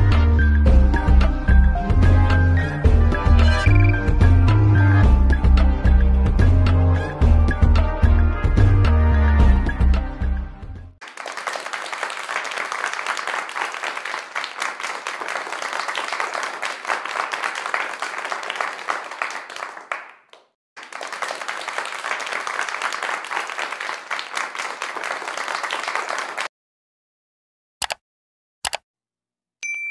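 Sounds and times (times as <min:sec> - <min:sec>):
music: 0:00.0 - 0:11.0
crowd applauding: 0:11.0 - 0:26.5.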